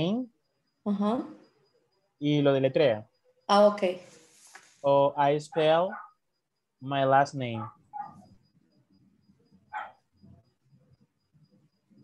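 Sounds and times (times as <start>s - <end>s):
faint dog barking: 5.5s - 6.2s, 7.4s - 8.3s, 9.7s - 10.1s.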